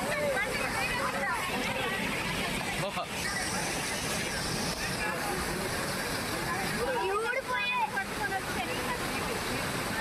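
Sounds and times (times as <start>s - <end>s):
faint human voices: 0.0s - 10.0s
floodwater rushing: 0.0s - 10.0s.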